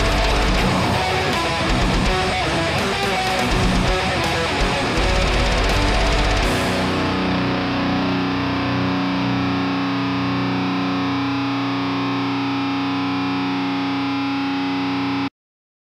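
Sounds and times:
distorted electric guitar chord: 0.0 - 15.3.

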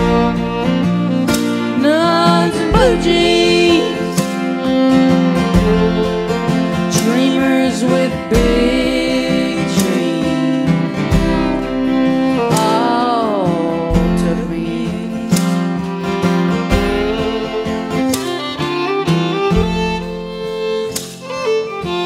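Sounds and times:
fiddle melody: 0.0 - 22.0
strummed acoustic guitar: 0.0 - 22.0.

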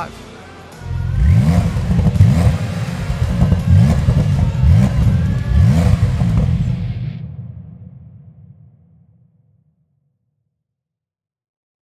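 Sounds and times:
car engine revving in quick blips: 1.1 - 7.2.

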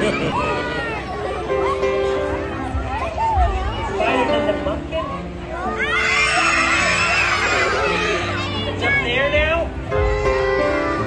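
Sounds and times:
children's voices: 0.0 - 9.2, 9.9 - 11.0
background music with held notes: 0.0 - 11.0.

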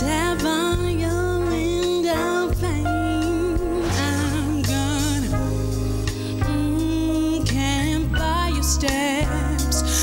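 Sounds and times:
band accompaniment: 0.0 - 10.0
woman singing into a microphone: 0.0 - 10.0.

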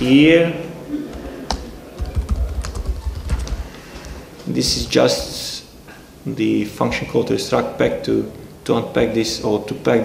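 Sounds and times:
laptop keyboard typing: 1.1 - 3.7.

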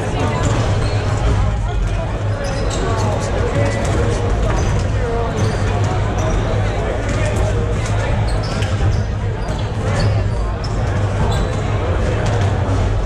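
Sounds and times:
crowd chatter in large hall: 0.0 - 13.0.

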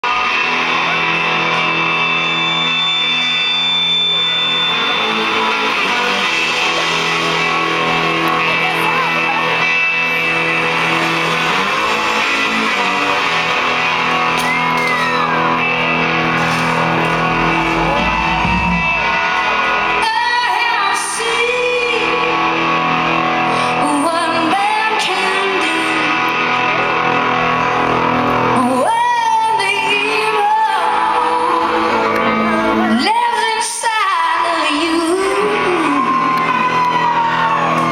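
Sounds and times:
electric guitars ringing chords: 0.0 - 33.6.

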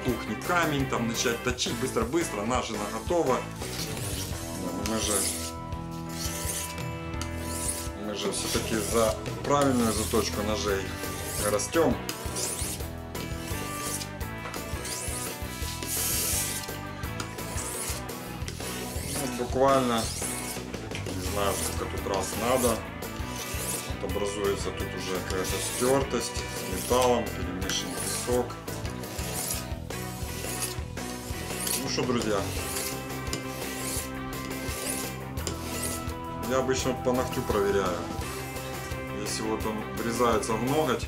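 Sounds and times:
background music: 0.0 - 41.0
knife scraping on whetstone: 2.8 - 36.2.

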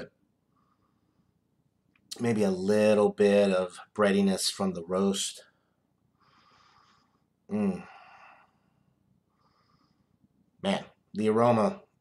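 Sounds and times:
man speaking: 2.1 - 5.5, 7.5 - 8.0, 10.6 - 12.0
man breathing through nose: 6.1 - 10.2.

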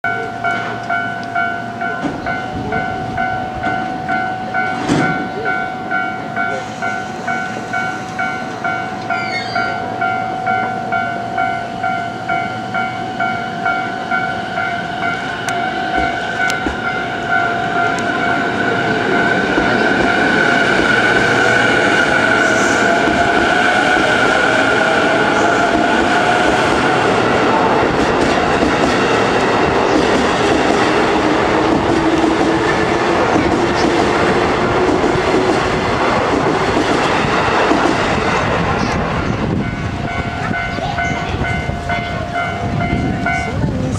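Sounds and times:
level crossing bell ringing: 0.0 - 18.9, 39.6 - 43.8
train wheel and rail noise: 0.0 - 43.9
electric train motors whining: 6.6 - 36.8.

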